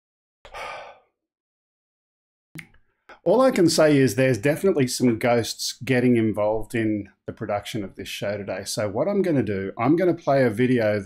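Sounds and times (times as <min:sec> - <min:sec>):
man sighing: 0:00.5 - 0:01.1.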